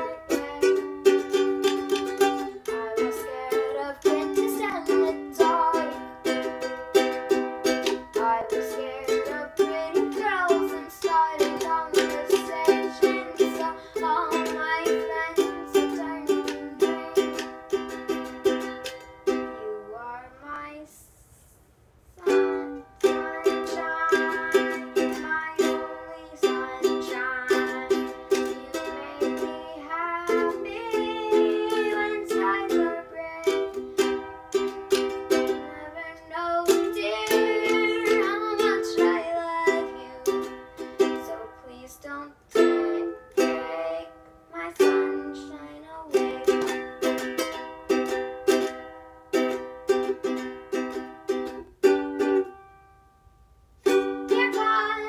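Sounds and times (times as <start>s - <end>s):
ukulele strumming chords: 0.0s - 20.1s, 22.2s - 55.0s.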